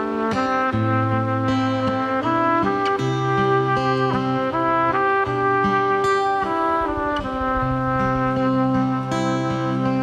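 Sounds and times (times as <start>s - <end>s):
brass and wind band chords: 0.0s - 10.0s.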